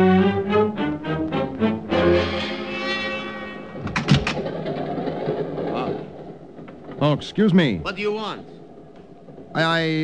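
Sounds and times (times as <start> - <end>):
moving train rumble: 0.0 - 10.0
train compartment door clicks: 3.8 - 4.5.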